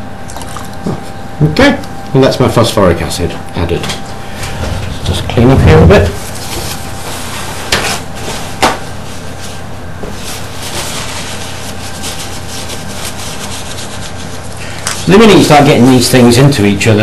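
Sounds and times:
background hiss and hum: 0.0s - 17.0s
paper towel rubbed between hands: 5.9s - 16.0s
paper tearing or crinkling: 10.2s - 15.5s.

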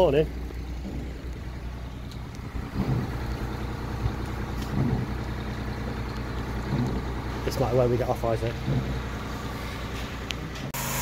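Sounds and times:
hoist engine humming: 0.0s - 11.0s.

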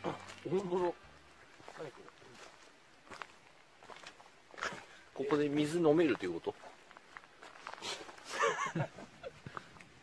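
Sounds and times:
footsteps on gravel and leaves: 0.0s - 10.0s.

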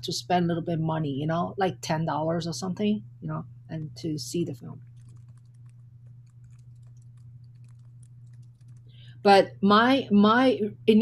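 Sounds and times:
steady low hum: 0.0s - 11.0s
typing on computer keyboard: 4.8s - 8.9s.

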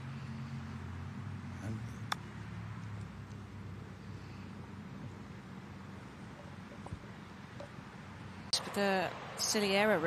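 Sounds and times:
golf club striking ball: 1.9s - 3.5s.

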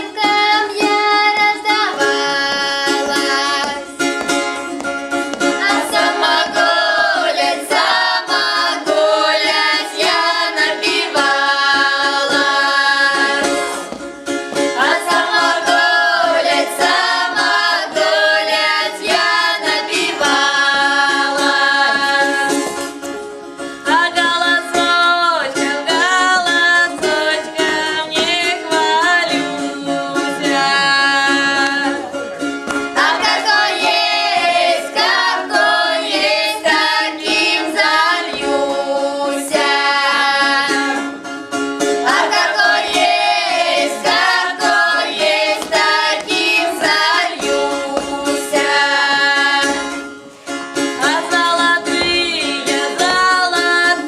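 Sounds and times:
children's choir singing: 0.0s - 23.1s, 23.8s - 41.3s, 41.9s - 50.2s, 50.8s - 54.0s.

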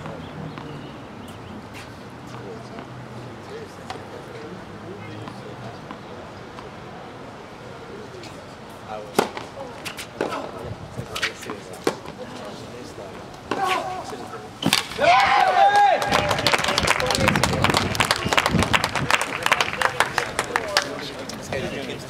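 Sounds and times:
racket striking tennis ball: 9.1s - 12.2s, 13.5s - 15.0s
loud shout: 14.9s - 17.4s
spectators clapping: 15.0s - 21.1s.

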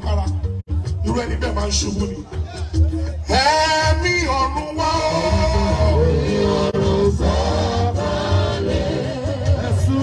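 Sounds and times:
band with heavy bass: 0.0s - 10.0s
choir singing: 5.0s - 10.0s.

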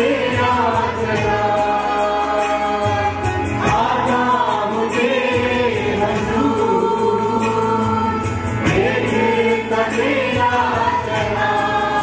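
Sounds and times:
group singing worship song: 0.0s - 12.0s
instrumental backing: 0.0s - 12.0s.

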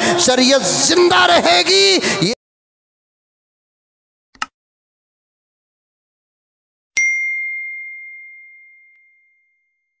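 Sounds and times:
notification bell ding: 7.0s - 10.0s.

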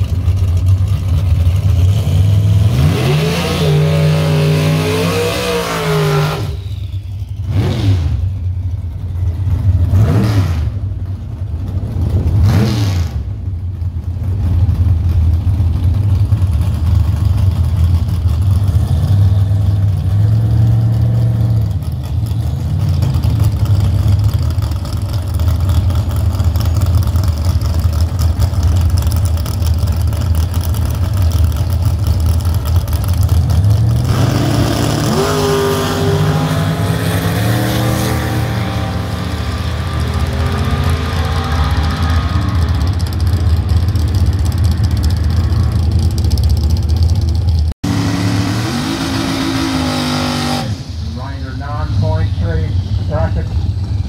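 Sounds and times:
car engine idling and revving: 0.0s - 54.0s.

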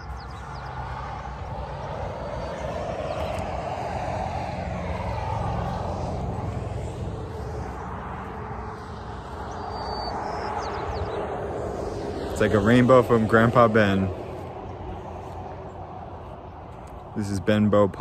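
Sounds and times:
highway traffic rushing: 0.0s - 18.0s.

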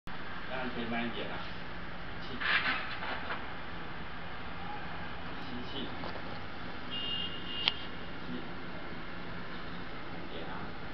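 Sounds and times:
street traffic noise: 0.1s - 10.9s.

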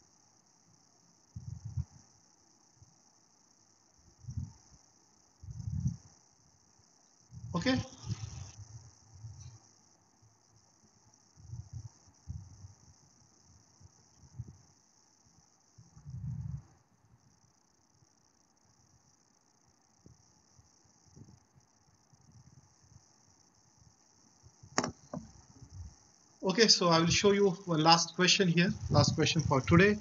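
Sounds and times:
crickets chirring: 0.0s - 30.0s.

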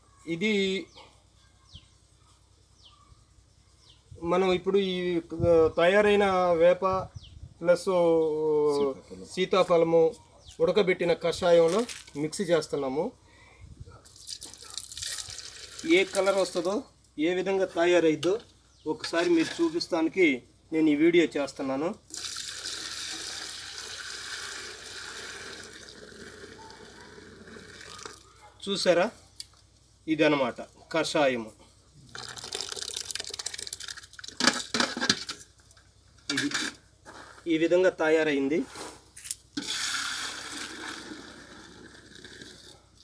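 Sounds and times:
liquid pouring into metal pot: 14.2s - 16.4s, 22.1s - 26.5s, 32.1s - 34.8s.

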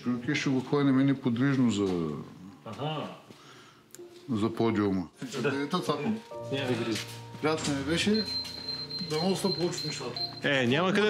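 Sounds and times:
soft background music: 0.0s - 11.0s
man talking: 9.0s - 11.0s.

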